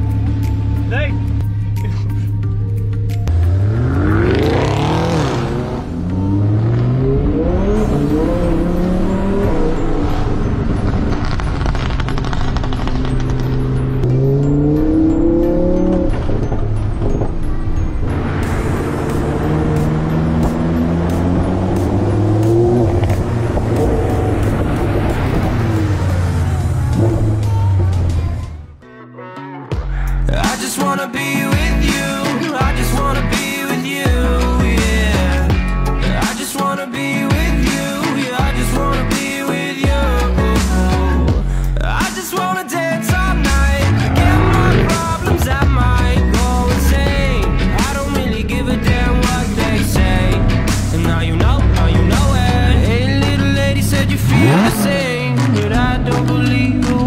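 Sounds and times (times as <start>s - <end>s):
car engine accelerating: 0.0s - 28.8s, 43.3s - 57.0s.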